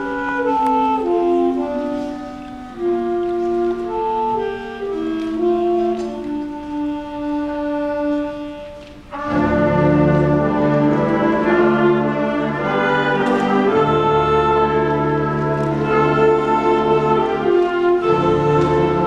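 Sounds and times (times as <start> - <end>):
concert band playing: 0.0 - 19.0.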